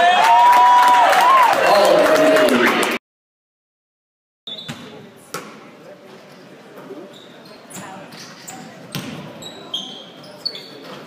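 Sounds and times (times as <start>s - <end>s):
sneaker squeaks: 4.5s - 5.1s, 6.3s - 11.0s.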